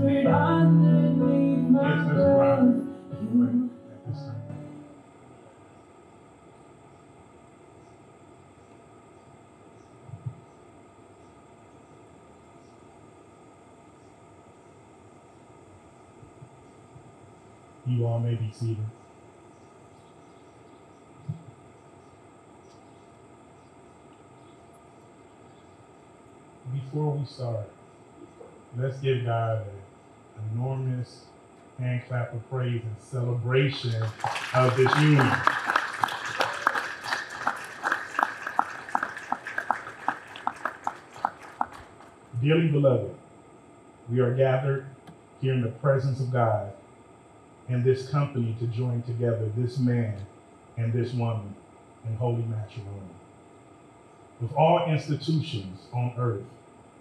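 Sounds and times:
outdoor background hiss: 0.0s - 57.0s
crowd applauding: 33.7s - 42.3s.

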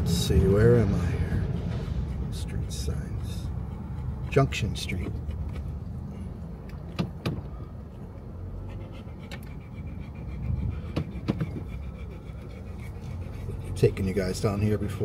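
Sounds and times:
car driving rumble from inside: 0.0s - 15.0s.

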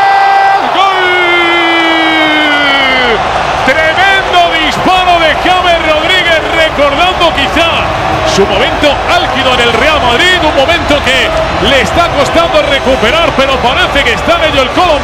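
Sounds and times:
stadium crowd noise: 0.0s - 15.0s
fast sports commentary: 0.1s - 15.0s.

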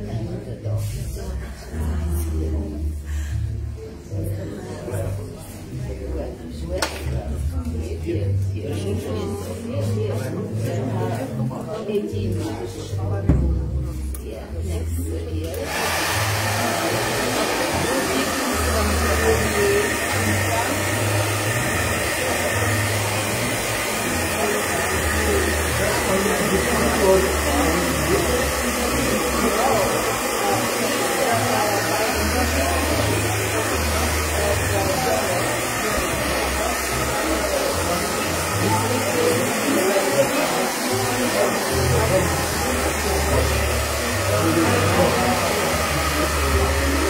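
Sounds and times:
hair dryer blowing: 15.4s - 47.0s.

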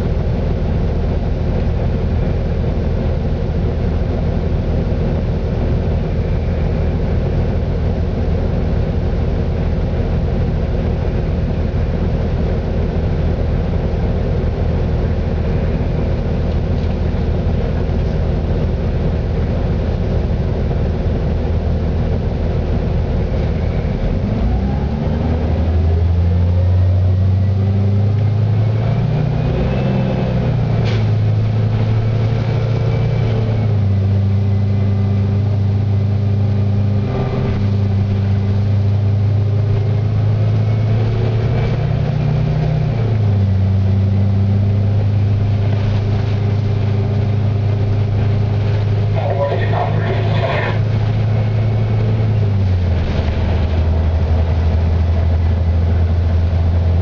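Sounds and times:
bus engine accelerating: 0.0s - 57.0s.

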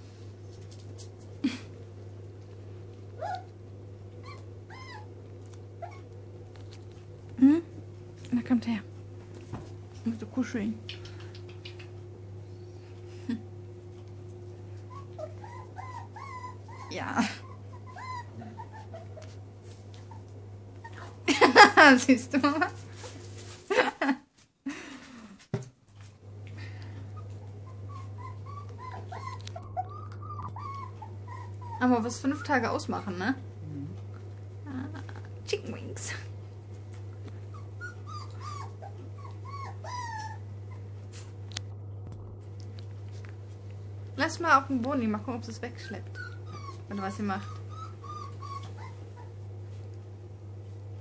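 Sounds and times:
puppies whining: 3.1s - 6.2s, 14.0s - 21.2s, 27.0s - 32.8s, 37.3s - 41.3s, 45.6s - 49.6s.

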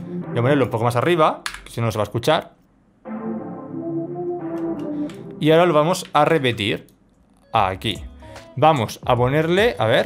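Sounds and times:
synth melody over held chords: 0.0s - 1.2s, 3.0s - 6.4s.

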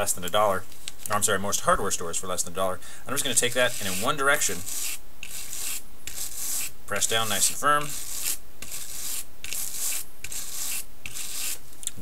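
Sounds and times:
wire brush scraping wood: 3.1s - 11.6s.

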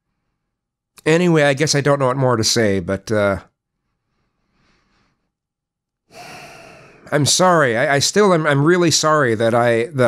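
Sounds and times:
man breathing: 3.7s - 5.5s, 6.1s - 7.7s.

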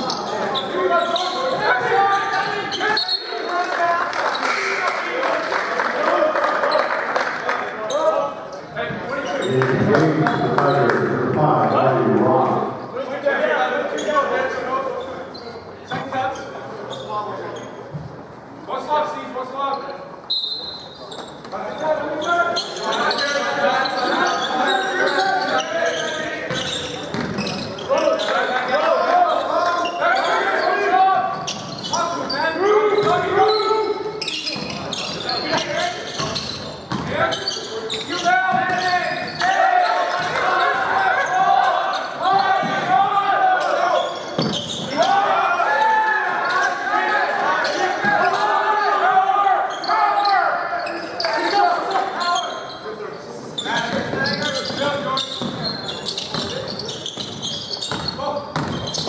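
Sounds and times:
voices echoing in a hall: 0.0s - 59.0s
basketball bouncing: 36.2s - 37.1s, 57.2s - 59.0s.

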